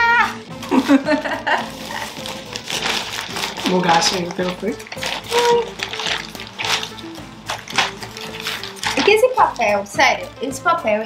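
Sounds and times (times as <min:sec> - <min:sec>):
background music: 0:00.0 - 0:11.0
gift-wrap paper crinkling: 0:00.4 - 0:09.8.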